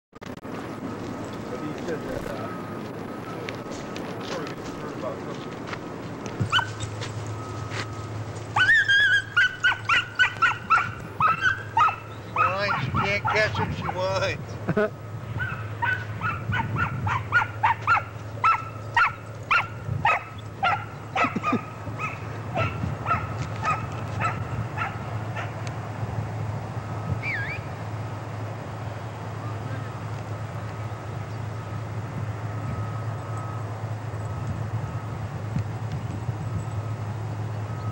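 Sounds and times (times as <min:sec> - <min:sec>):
dog barking in high yips: 0:06.5 - 0:06.8, 0:08.6 - 0:14.0, 0:15.4 - 0:25.5.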